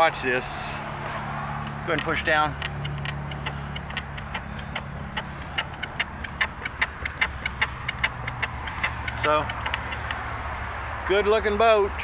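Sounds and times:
rapid clicking and knocking: 1.6 - 10.5.

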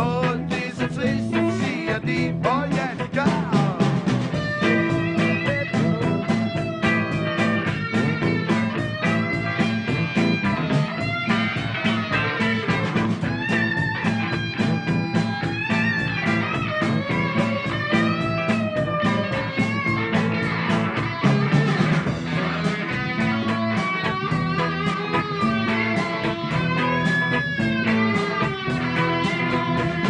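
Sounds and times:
bass guitar: 0.0 - 30.0
electric guitar bending notes: 0.0 - 30.0
steady drum beat: 0.0 - 30.0.

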